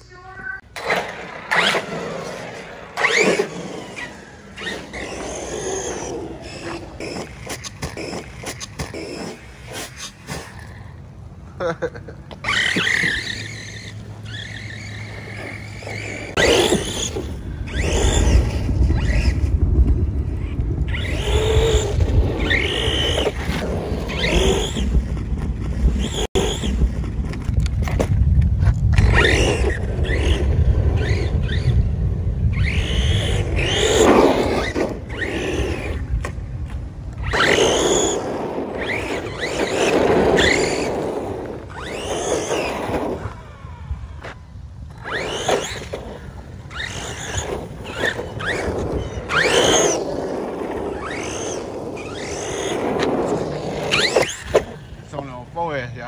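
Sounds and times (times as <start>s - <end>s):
rumbling tyre and chassis noise: 0.7s - 56.0s
electric motor whining: 1.5s - 10.9s, 12.4s - 27.4s, 28.9s - 36.4s, 37.1s - 55.1s.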